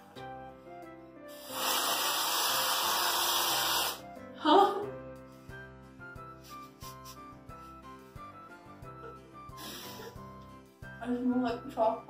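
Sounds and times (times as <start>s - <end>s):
background music: 0.0s - 12.0s
aerosol can spraying hiss: 1.3s - 4.0s.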